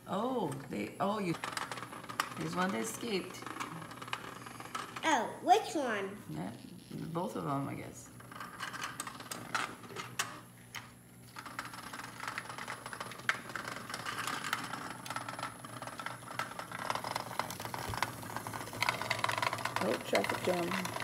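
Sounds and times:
robot bugs rattling on plastic: 11.3 - 21.0.

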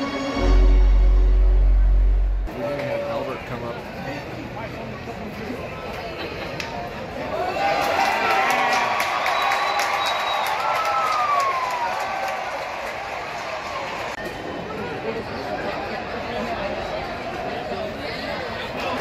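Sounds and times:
stadium crowd cheering: 0.0 - 3.7, 7.1 - 16.1.

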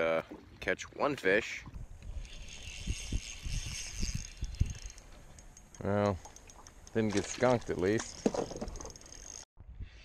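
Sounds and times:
fishing reel gears whirring: 2.0 - 9.5.

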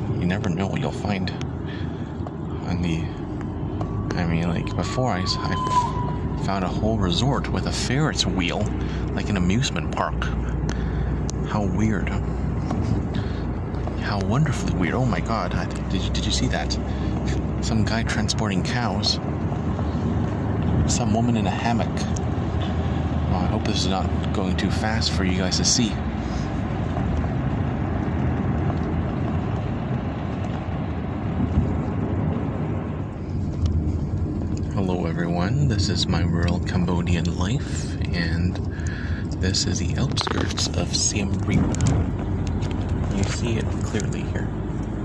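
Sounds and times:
car engine and tyre noise: 0.0 - 45.0.

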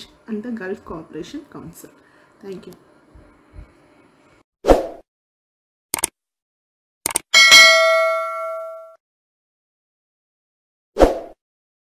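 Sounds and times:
button clicks: 7.1 - 7.3
notification bell ding: 7.4 - 9.0.

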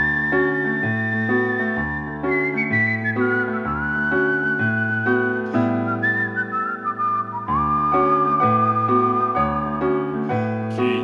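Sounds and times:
man whistling a melody: 0.0 - 10.7.

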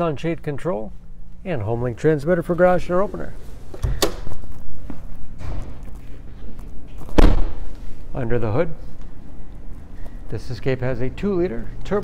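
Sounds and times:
car door slamming shut: 7.2 - 7.6.

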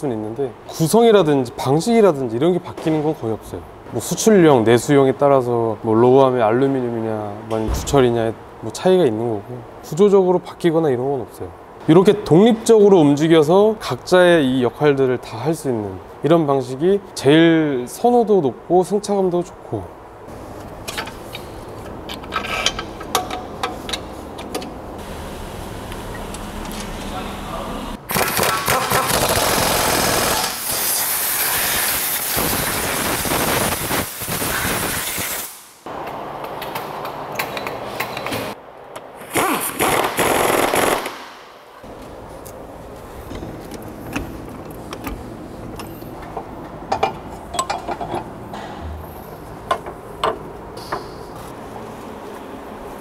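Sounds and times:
pneumatic impact wrench: 28.1 - 35.8, 39.2 - 41.3.

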